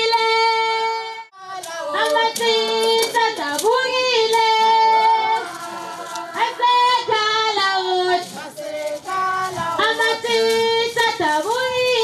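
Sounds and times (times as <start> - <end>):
women singing together: 0.0 - 12.0.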